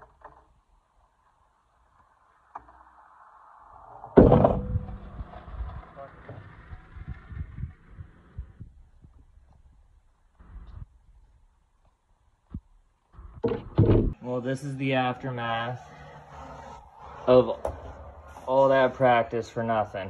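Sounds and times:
skateboard wheels rolling on concrete: 0.0s - 4.2s, 4.8s - 13.8s.

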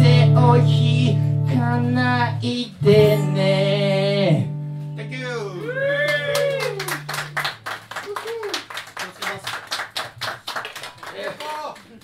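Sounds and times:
audience clapping: 5.6s - 12.0s.

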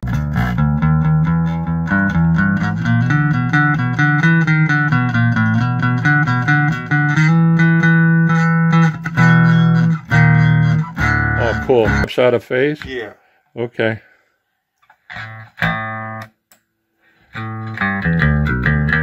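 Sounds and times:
electric bass plucked notes: 0.0s - 12.1s, 15.1s - 16.3s, 17.3s - 19.0s.

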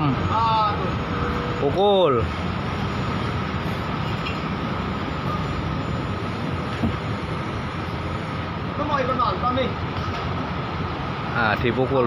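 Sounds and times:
construction machinery noise: 0.0s - 12.0s.

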